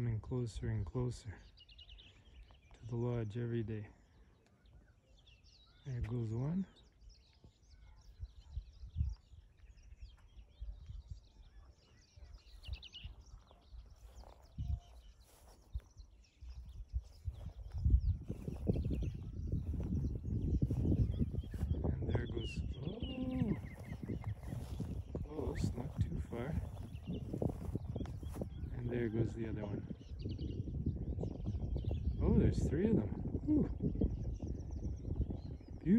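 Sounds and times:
wind rumbling on microphone: 0.0 - 4.0, 4.6 - 35.9
birds chirping and calling: 0.0 - 35.9.

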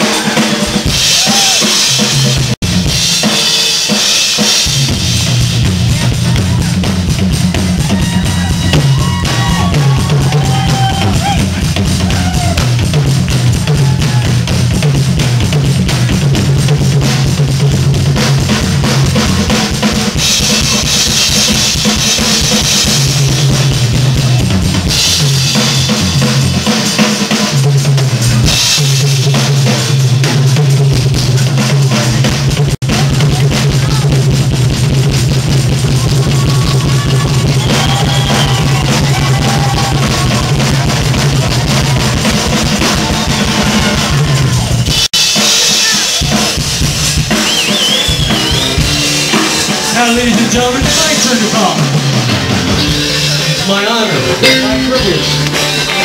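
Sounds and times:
rock drum kit: 0.0 - 56.0
low bass line: 4.8 - 20.6, 48.2 - 56.0.

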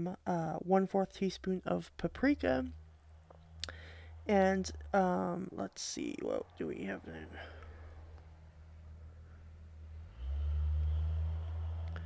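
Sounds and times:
steady low hum: 0.0 - 10.2.

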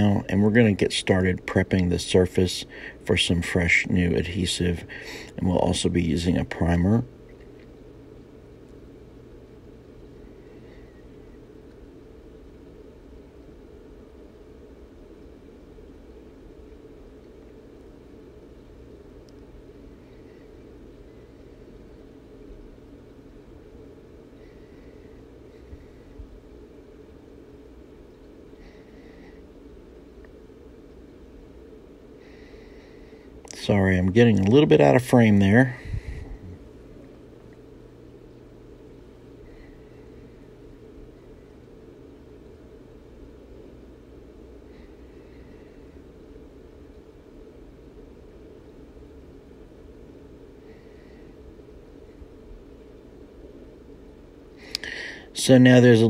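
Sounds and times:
low hum of room tone: 0.0 - 56.0.

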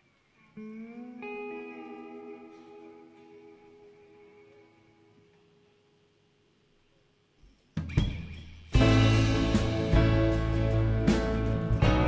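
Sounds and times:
guitar plucked: 0.4 - 5.8, 8.7 - 12.0.

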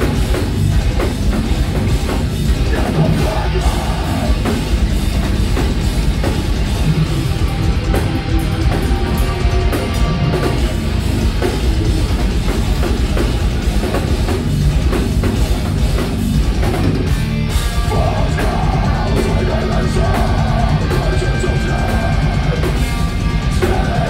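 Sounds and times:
bass guitar: 0.0 - 24.0
distorted electric guitars: 0.0 - 24.0
pounding drum kit: 0.0 - 24.0.

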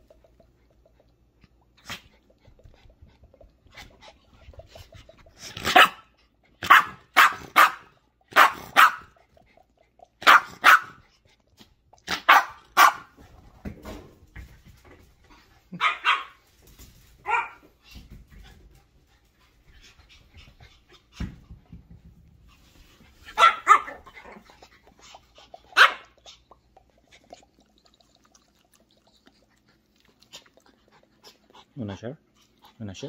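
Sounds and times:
small dog yapping: 23.4 - 24.1.

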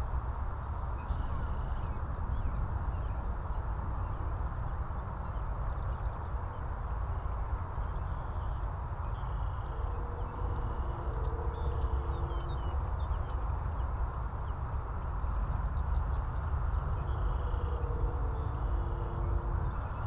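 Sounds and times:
aircraft radial engines rumbling: 9.0 - 20.0.

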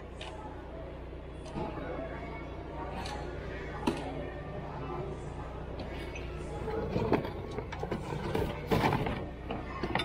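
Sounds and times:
steady low hum: 0.0 - 10.0
items clattering in plastic bin: 7.0 - 9.3.

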